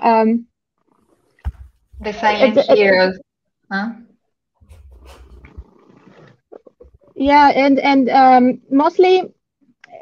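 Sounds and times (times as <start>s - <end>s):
cat purring: 4.6s - 9.3s.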